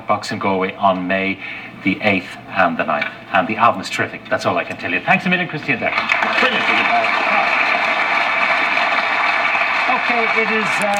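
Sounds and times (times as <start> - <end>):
audience applauding through tv speaker: 5.9 - 10.9.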